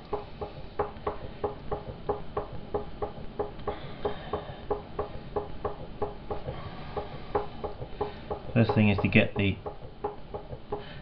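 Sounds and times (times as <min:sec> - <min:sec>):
potter's wheel knocking: 0:00.0 - 0:11.0.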